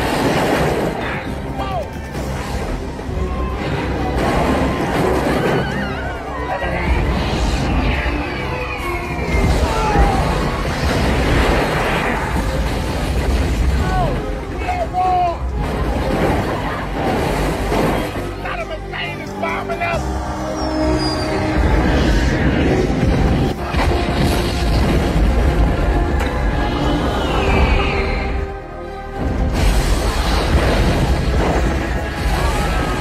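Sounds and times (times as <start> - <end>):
debris crashing: 0.0 - 18.7, 22.9 - 26.6, 29.2 - 33.0
explosion rumble: 21.5 - 27.8, 29.2 - 33.0.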